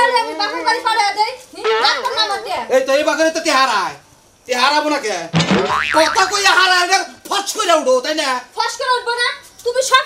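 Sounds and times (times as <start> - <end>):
comic boing sound effect: 5.4 - 6.5.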